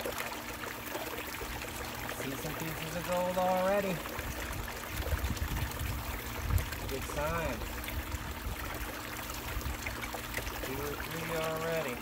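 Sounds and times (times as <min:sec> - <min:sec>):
faint steady hum: 0:00.0 - 0:12.0
water pouring into bucket: 0:00.0 - 0:12.0.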